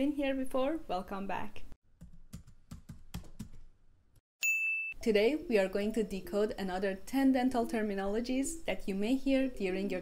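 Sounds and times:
bright ding: 4.4 - 5.1.

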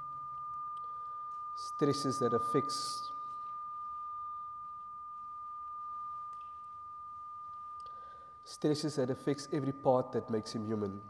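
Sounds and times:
high-pitched pure tone: 0.0 - 10.4.

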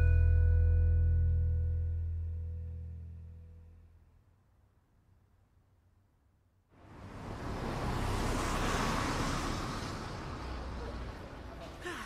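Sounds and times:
city street traffic: 6.7 - 12.0.

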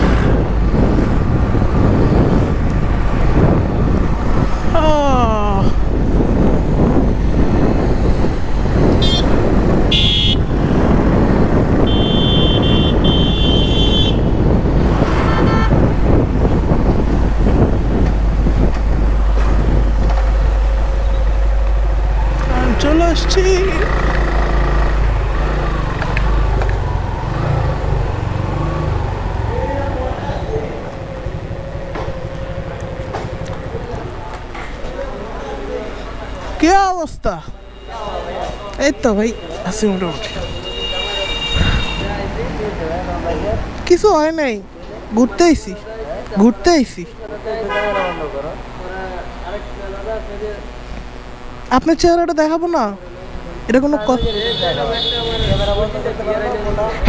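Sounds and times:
motorcycle riding: 0.0 - 36.6, 47.2 - 57.0
wind and road rush: 0.0 - 57.0
horn beeping: 9.0 - 10.6, 11.8 - 14.4, 15.0 - 16.2, 37.5 - 42.2, 53.8 - 56.1.

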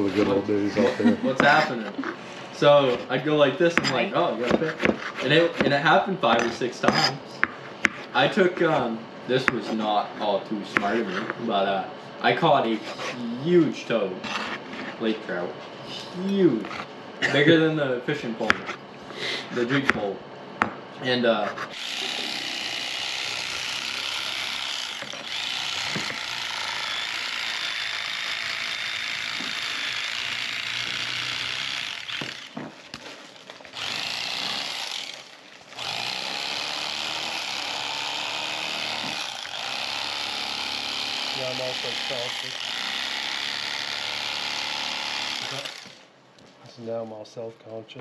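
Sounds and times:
electric fillet knife motor running: 21.7 - 46.1.

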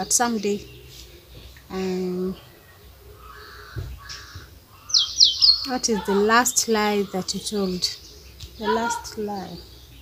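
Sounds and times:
bird calling: 0.0 - 9.8
high falling bird chirps: 0.0 - 10.0.

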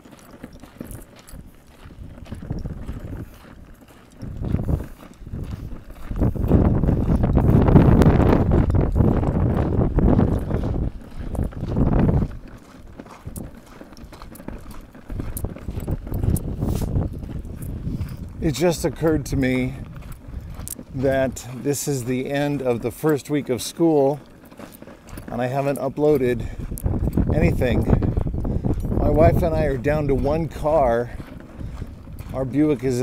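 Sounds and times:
footsteps on concrete: 0.0 - 33.0
low rumbling microphone noise: 0.7 - 23.0, 26.1 - 33.0.

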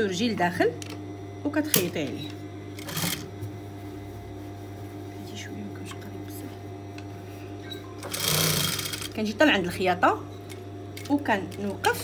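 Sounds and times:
sewing machine motor humming: 2.7 - 3.4, 8.0 - 9.3.

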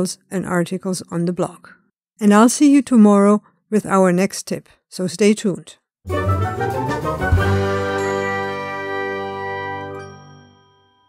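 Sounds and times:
chime-like music sting: 6.3 - 11.0.

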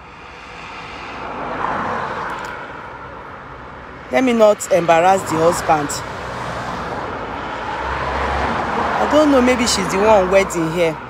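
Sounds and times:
vehicle passing by: 0.0 - 11.0.

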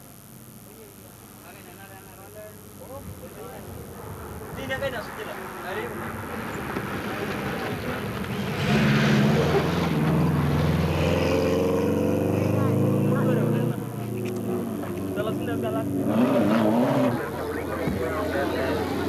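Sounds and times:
rally car passing at high revs: 4.7 - 19.0.

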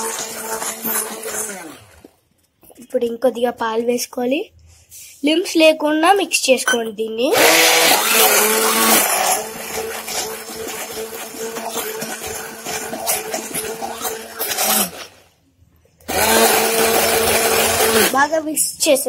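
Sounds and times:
electric hand blender whine: 0.0 - 2.1, 7.3 - 15.2, 16.1 - 18.2.

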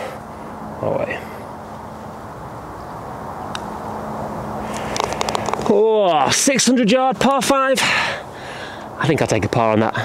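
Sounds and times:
faint constant hum: 0.0 - 10.0.

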